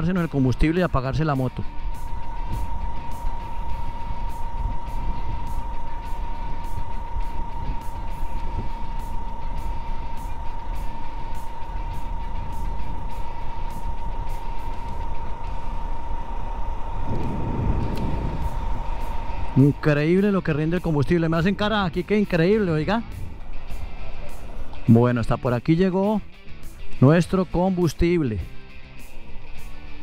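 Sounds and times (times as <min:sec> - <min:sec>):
wind rumble on microphone: 0:00.3 - 0:25.0
motorcycle engine cruising: 0:01.4 - 0:25.2.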